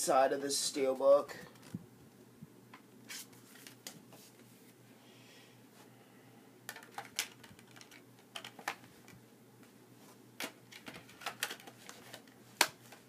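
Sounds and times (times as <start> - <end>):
clicks of handling a disc case: 6.7 - 9.2, 10.4 - 13.0.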